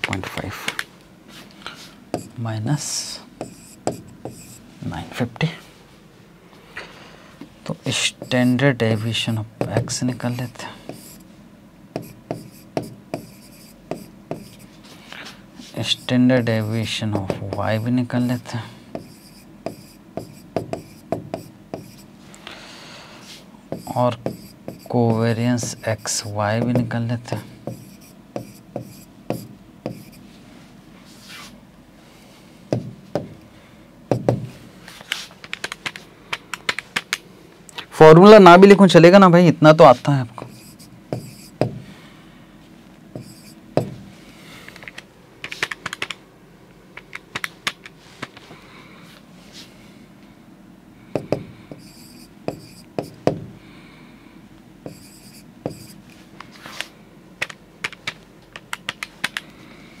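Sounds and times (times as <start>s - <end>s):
marker tapping on whiteboard: 2.1s - 2.3s, 3.4s - 4.6s, 9.6s - 10.0s, 10.9s - 11.2s, 11.9s - 14.6s, 17.2s - 18.3s, 18.9s - 22.0s, 23.7s - 26.0s, 26.6s - 30.2s, 32.7s - 33.3s, 34.1s - 34.5s, 40.4s - 41.8s, 43.2s - 44.0s, 51.2s - 53.5s, 54.8s - 55.9s
marker scratching on whiteboard: 2.2s - 2.4s, 3.4s - 4.7s, 7.9s - 11.3s, 12.0s - 15.0s, 15.6s - 22.1s, 23.2s - 30.2s, 40.4s - 41.7s, 43.2s - 43.9s, 51.7s - 53.3s, 54.9s - 56.0s
dull knocks on hard surface: 52.5s - 53.5s.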